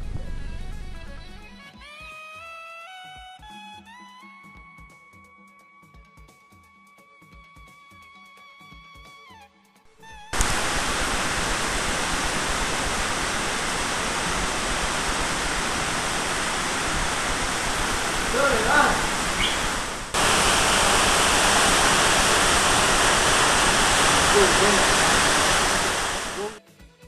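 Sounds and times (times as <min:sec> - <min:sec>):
water rushing in a cave: 0:10.1 - 0:26.6.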